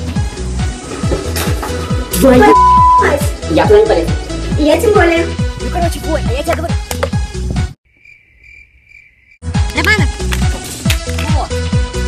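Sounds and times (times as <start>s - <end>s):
crickets chirping: 7.9s - 9.4s.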